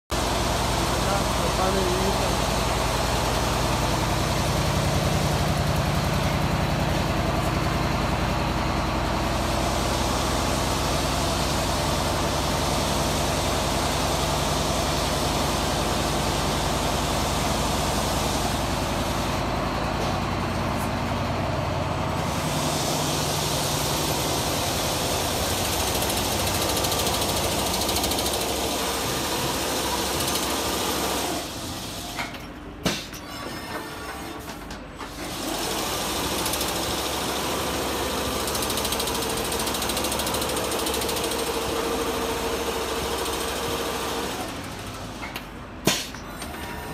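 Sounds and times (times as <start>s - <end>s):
quilting machine running: 0.2s - 32.2s, 34.1s - 45.2s.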